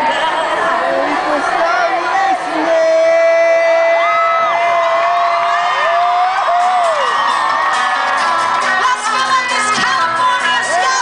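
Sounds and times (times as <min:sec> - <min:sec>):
audience whooping and cheering: 0:03.6 - 0:09.3
live country band music: 0:06.3 - 0:11.0.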